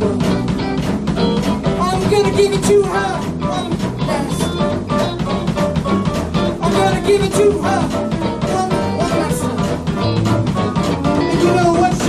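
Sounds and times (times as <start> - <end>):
drum kit beat: 0.0 - 12.0
electric guitars: 0.0 - 12.0
person singing: 1.8 - 4.6, 6.6 - 9.9, 11.2 - 12.0.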